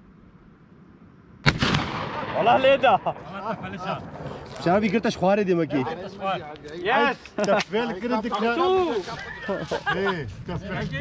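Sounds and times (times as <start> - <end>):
gunshot ringing: 1.4 - 2.9.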